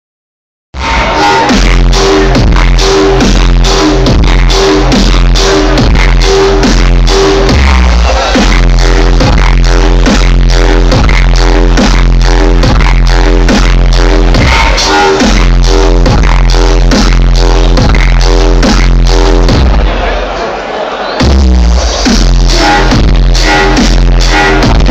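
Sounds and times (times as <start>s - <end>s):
loud dubstep music: 0.8s - 20.4s, 21.2s - 24.9s.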